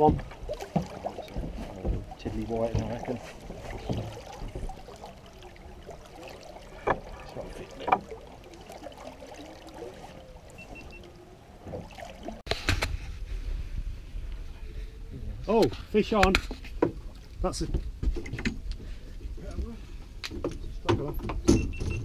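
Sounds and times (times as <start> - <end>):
faint voices: 0.0 - 11.5
wind rumble on microphone: 12.6 - 22.0.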